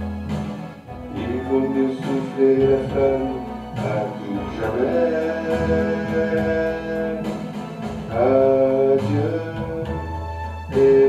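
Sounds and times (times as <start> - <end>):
backing track with guitar and strings: 0.0 - 11.0
man singing into microphone: 1.1 - 11.0.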